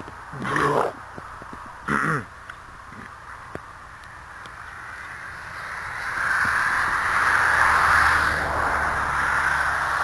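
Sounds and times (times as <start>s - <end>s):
man growling: 0.4s - 1.0s.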